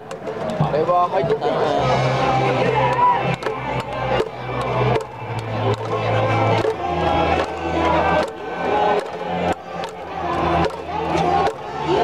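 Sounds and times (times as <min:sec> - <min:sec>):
crowd chanting: 0:00.4 - 0:12.0.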